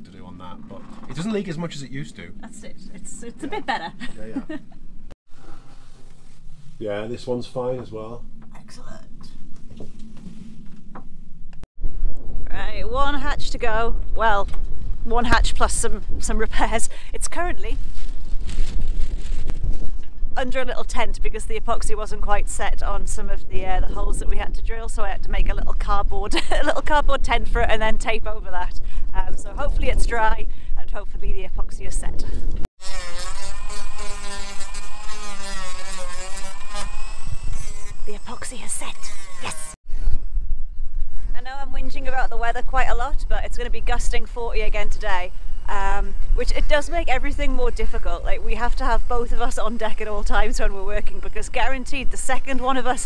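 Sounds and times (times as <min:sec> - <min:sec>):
steady low rumble: 0:00.0 - 0:05.2, 0:06.1 - 0:32.7, 0:39.8 - 0:53.0
wind buffeting microphone: 0:07.9 - 0:32.7
handheld power tool running: 0:32.8 - 0:39.8.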